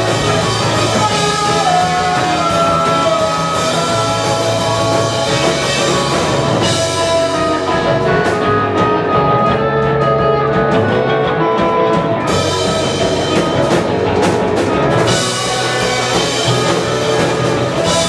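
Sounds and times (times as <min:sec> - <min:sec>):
drum kit with cymbals: 0:00.0 - 0:11.0, 0:12.0 - 0:18.0
distorted electric guitars: 0:00.0 - 0:18.0.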